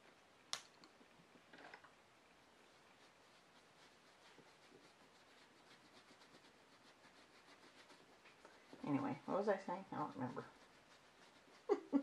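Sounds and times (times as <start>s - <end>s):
paintbrush rubbing: 2.4s - 12.0s.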